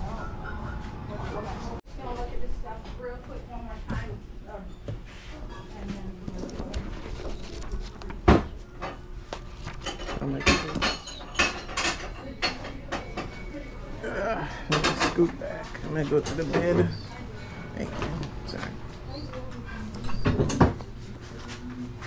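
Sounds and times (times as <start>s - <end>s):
faint murmur of voices: 10.2s - 22.0s.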